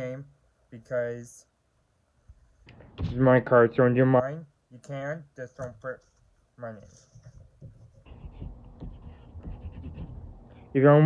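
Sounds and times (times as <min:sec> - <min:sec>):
pen scratching on paper: 0:06.0 - 0:10.7.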